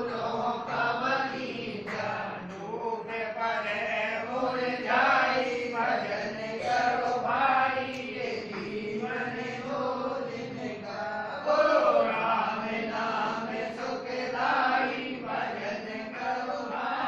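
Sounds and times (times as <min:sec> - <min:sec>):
voices chanting devotional song: 0:00.0 - 0:17.0.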